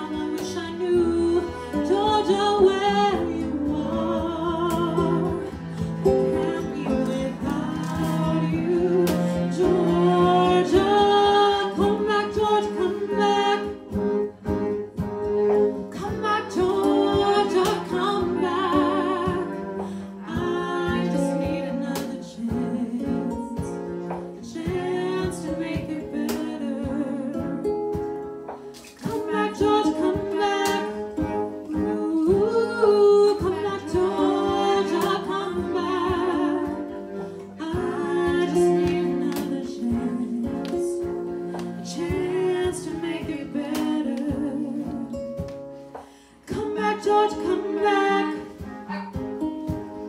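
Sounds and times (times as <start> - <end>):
women singing wordless lines: 0.0 - 14.0, 15.8 - 27.7, 29.0 - 45.5, 46.3 - 49.2
cello: 0.0 - 50.0
guitar: 0.0 - 50.0.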